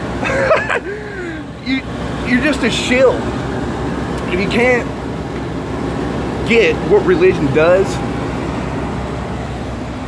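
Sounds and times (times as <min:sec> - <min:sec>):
machine noise: 0:00.0 - 0:10.0.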